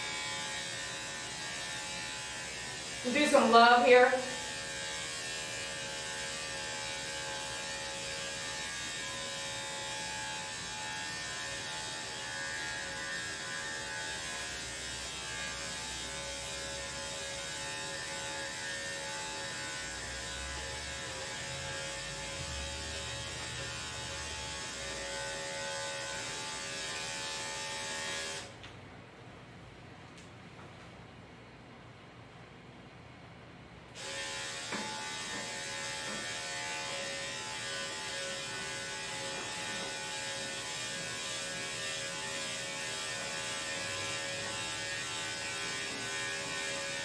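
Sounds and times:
electric clipper humming: 0.0 - 28.6, 34.0 - 47.0.

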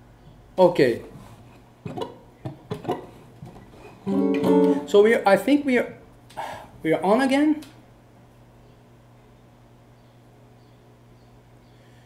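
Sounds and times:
plucked guitar notes: 4.0 - 5.0.

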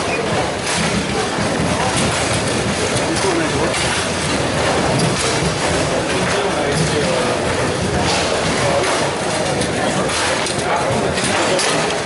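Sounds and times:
foosball rods and balls clattering: 0.0 - 12.0.

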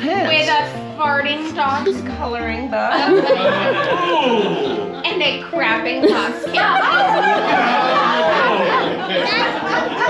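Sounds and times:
laughter: 2.9 - 4.8, 6.0 - 10.0
people chattering: 6.0 - 10.0.

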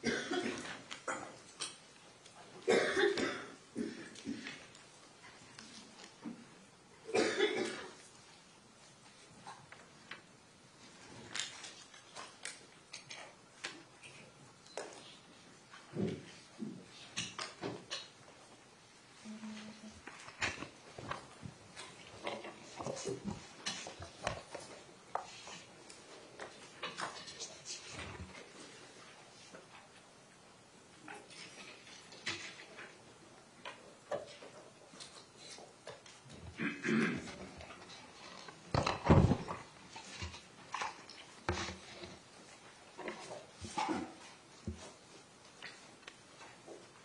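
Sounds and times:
person coughing: 0.0 - 1.4, 2.6 - 4.6, 7.1 - 8.0, 36.6 - 37.4.

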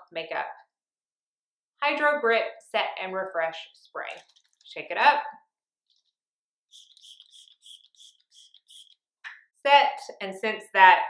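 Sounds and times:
spray bottle pump hiss: 6.7 - 9.0.

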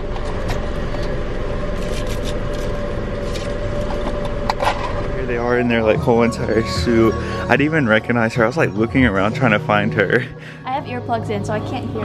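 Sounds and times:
car engine idling: 0.0 - 12.0
faint steady hum: 0.0 - 12.0.

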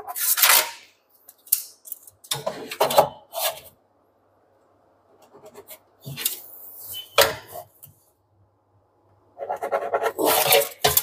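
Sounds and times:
pencil scratching on wood: 9.4 - 10.9.

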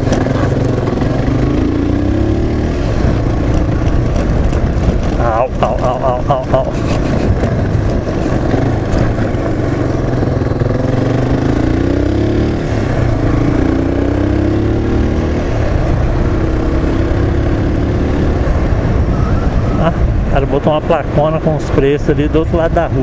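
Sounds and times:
steady low rumble: 0.0 - 14.4
motorcycle engine accelerating: 0.0 - 23.0.

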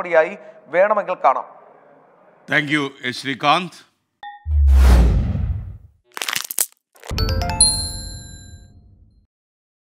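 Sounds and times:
bright ringing chimes: 7.1 - 8.7.

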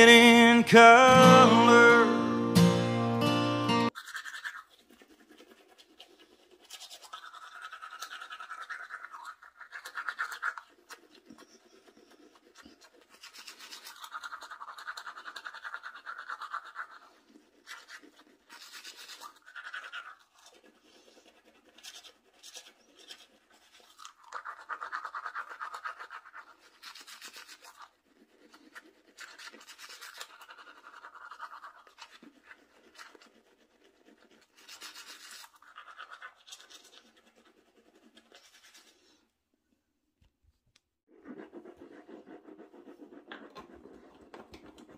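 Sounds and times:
toothbrush scrubbing teeth: 3.9 - 39.4, 41.1 - 44.9.

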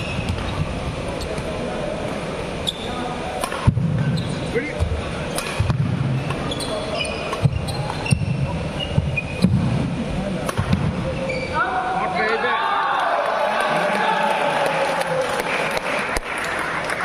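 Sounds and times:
racket hitting shuttlecock: 3.4 - 4.1, 5.3 - 6.5, 10.4 - 11.0
shoe squeaks on court: 4.0 - 4.5, 6.3 - 9.6, 11.1 - 11.6.

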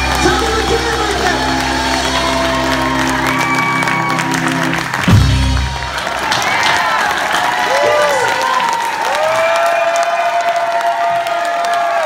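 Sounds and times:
audience applauding: 0.0 - 12.0
audience whooping and cheering: 0.0 - 12.0.

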